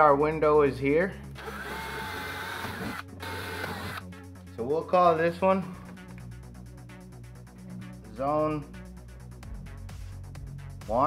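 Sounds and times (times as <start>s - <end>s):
power drill boring into wood: 1.4s - 4.0s.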